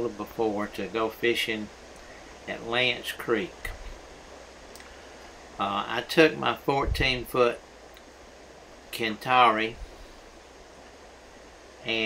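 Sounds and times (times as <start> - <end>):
faint steady hiss: 0.0 - 12.0
man's voice: 5.6 - 7.6, 9.0 - 9.8.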